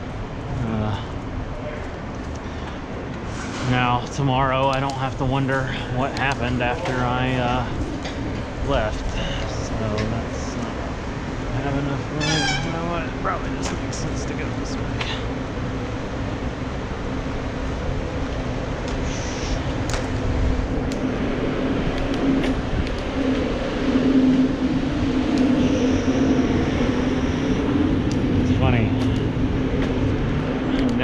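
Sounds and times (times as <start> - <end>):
city traffic: 0.0 - 31.0
steady low hum: 0.0 - 31.0
wind noise: 0.0 - 31.0
thin high whine: 21.0 - 29.3.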